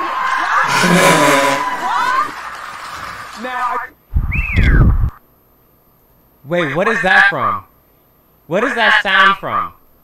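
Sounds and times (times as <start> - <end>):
heavy bass: 0.7 - 2.0
whistle-like tone sliding down: 0.7 - 2.2.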